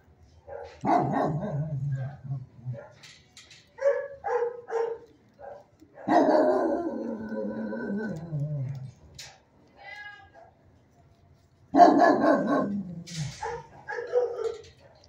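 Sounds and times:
dogs barking: 0:00.4 - 0:03.1, 0:03.8 - 0:08.3, 0:11.7 - 0:15.0
dog howling call: 0:06.1 - 0:08.8.

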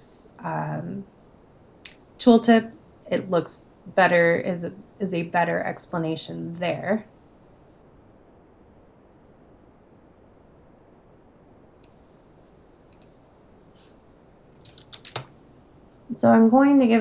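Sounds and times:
mouse and keyboard clicks: 0:14.6 - 0:15.3.

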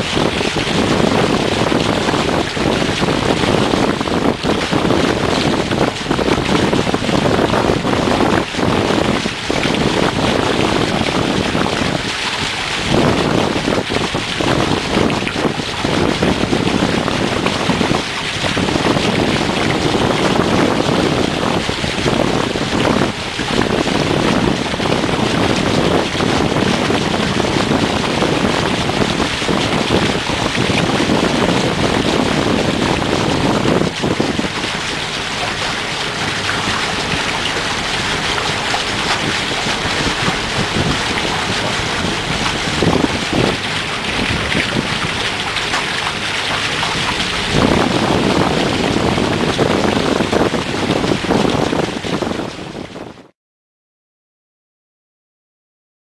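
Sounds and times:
water rushing along hull: 0:00.0 - 0:53.3
wind buffeting microphone: 0:00.0 - 0:53.3.

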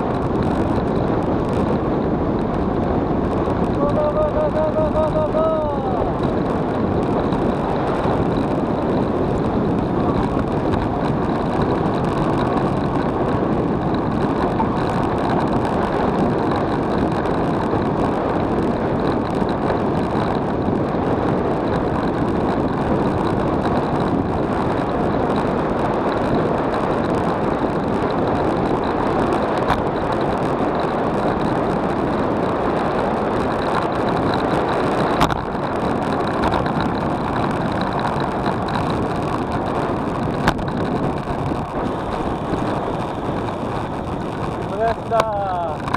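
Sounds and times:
road noise: 0:00.0 - 0:45.9
wind rushing over microphone: 0:00.0 - 0:45.9.

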